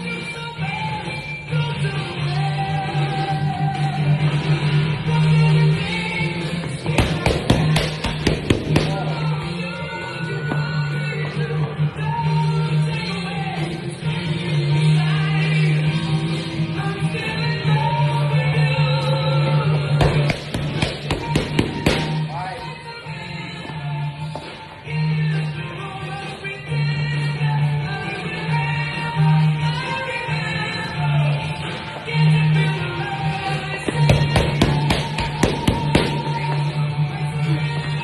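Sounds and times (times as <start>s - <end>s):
background music: 0.0s - 38.0s
boxing gloves hitting mitts: 6.8s - 9.2s, 20.0s - 22.2s, 33.9s - 36.5s.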